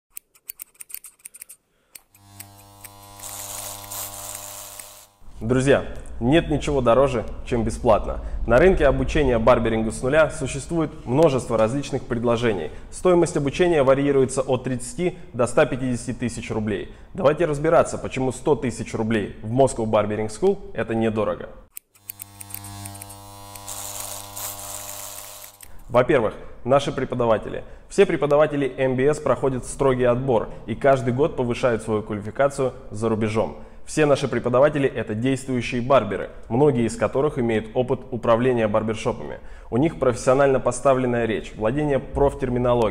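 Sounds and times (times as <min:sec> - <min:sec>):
scissors snipping: 0:00.1 - 0:05.0, 0:21.8 - 0:25.7
electric hair clipper buzzing: 0:02.0 - 0:05.4, 0:21.8 - 0:25.7.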